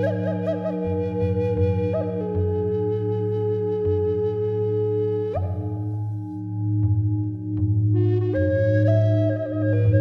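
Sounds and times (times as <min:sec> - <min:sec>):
flute holding long note: 0:00.0 - 0:06.8, 0:07.8 - 0:10.0.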